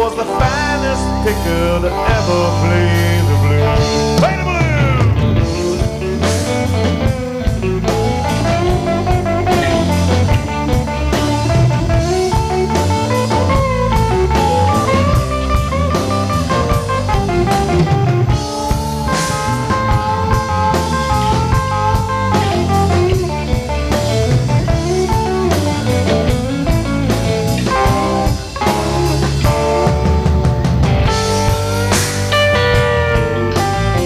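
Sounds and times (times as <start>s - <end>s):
blues-rock band playing: 0.0s - 34.0s
electric guitar bending notes: 0.0s - 34.0s.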